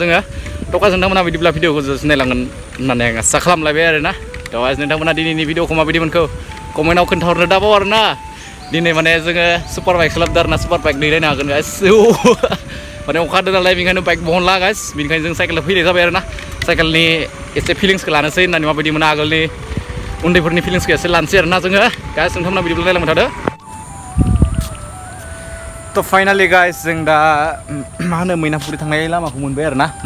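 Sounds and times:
man talking: 0.0s - 19.6s, 20.2s - 23.4s, 25.9s - 30.0s
background music: 0.0s - 30.0s
man talking excitedly: 26.0s - 30.0s.

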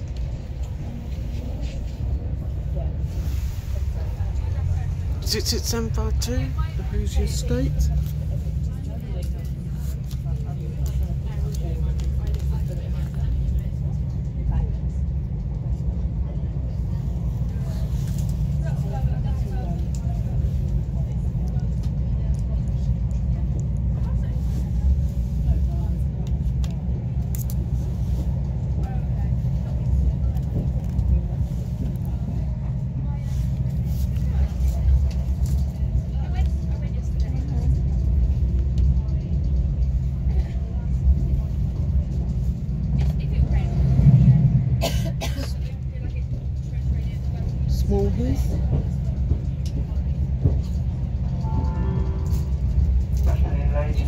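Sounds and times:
train rumbling at speed: 0.0s - 54.0s.

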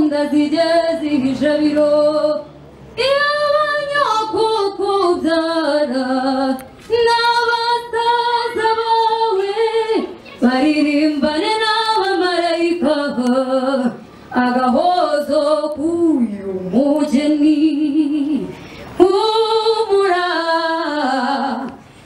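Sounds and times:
woman singing slow melody: 3.0s - 21.8s.

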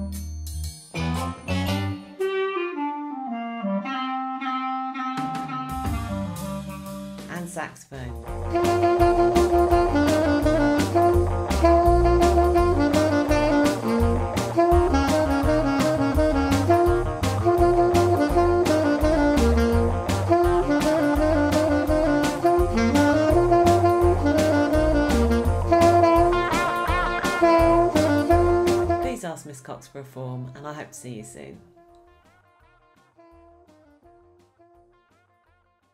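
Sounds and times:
alto saxophone jazzy melody: 1.0s - 7.3s, 8.2s - 29.2s, 31.6s - 35.3s
backing track drum beat and bass: 5.2s - 29.3s.

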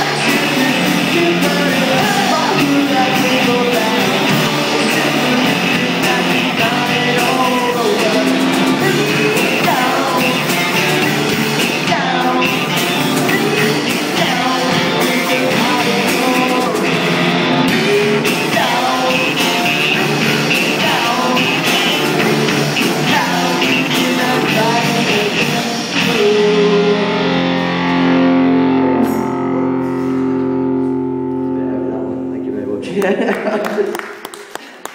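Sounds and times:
man singing lead vocal: 0.0s - 27.9s
drums: 0.0s - 31.4s
bass guitar: 0.0s - 33.6s
electric guitar: 0.0s - 34.9s
cymbals ringing: 28.9s - 32.4s.

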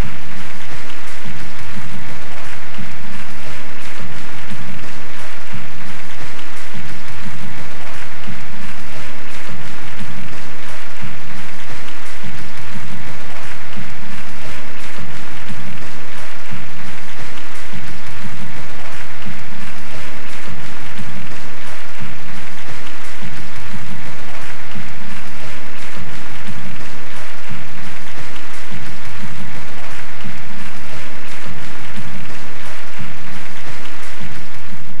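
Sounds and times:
audience applause: 0.0s - 35.0s
music with bass beat: 0.0s - 35.0s.

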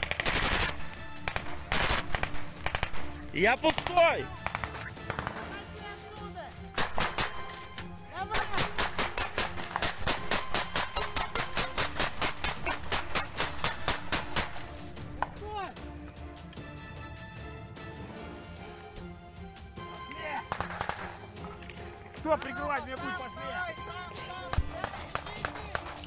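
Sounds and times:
rapid gunfire: 0.0s - 5.6s, 6.7s - 7.6s, 8.2s - 14.8s, 20.5s - 21.2s, 24.5s - 26.0s
background music: 0.0s - 26.0s.

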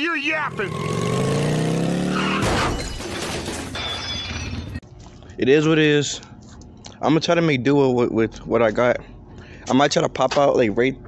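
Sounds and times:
cartoon motorcycle engine revving: 0.2s - 2.8s.

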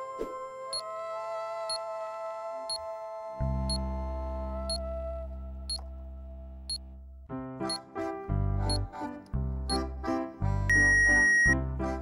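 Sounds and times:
background music: 0.0s - 12.0s
countdown timer ticking: 8.6s - 9.1s, 10.7s - 11.6s.

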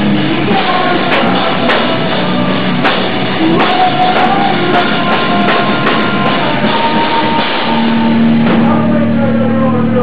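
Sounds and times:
sharp drum hits: 0.0s - 8.9s
live rock band playing: 0.0s - 10.0s.

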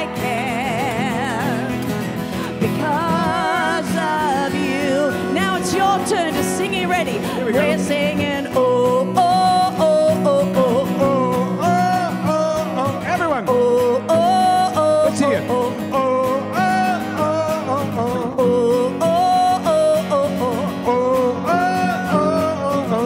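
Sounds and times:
acoustic guitars strummed: 0.0s - 23.0s
person singing: 0.0s - 23.0s.

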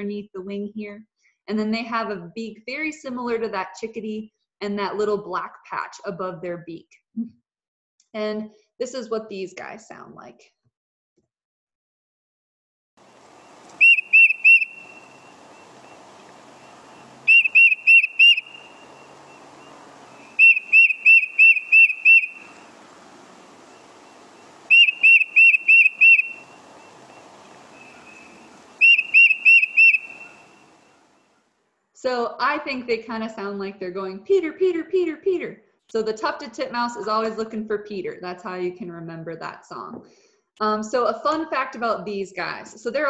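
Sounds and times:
faint background hiss: 13.0s - 32.2s
tufted titmouse whistled song: 13.7s - 22.6s, 23.7s - 30.9s.

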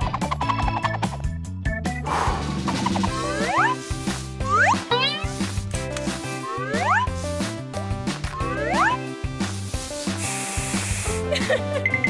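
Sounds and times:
background music: 0.0s - 12.0s
aerosol can spraying hiss: 9.4s - 11.6s.

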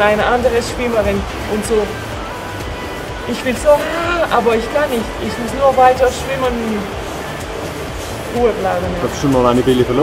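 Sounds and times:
person speaking: 3.3s - 6.9s.

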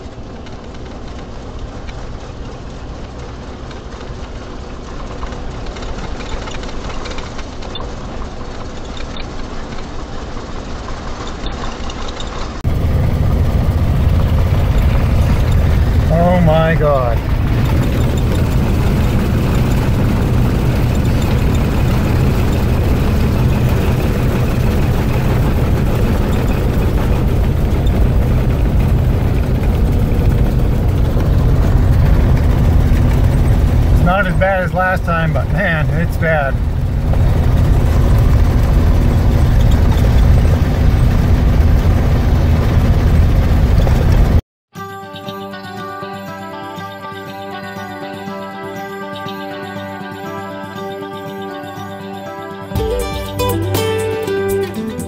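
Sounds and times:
motorhome engine drone: 0.0s - 44.4s, 47.5s - 55.0s
road noise: 0.0s - 44.4s.

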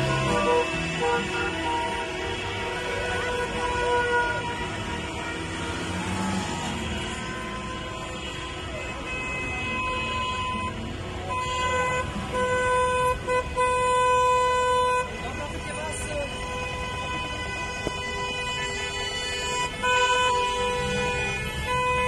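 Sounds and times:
car horns honking: 0.0s - 22.0s
traffic noise: 0.0s - 22.0s.

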